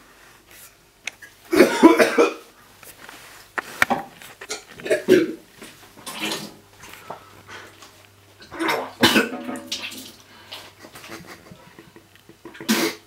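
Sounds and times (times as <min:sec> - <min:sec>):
man coughing and spluttering: 0:01.5 - 0:02.5, 0:04.5 - 0:05.4, 0:08.5 - 0:10.1, 0:11.0 - 0:13.0.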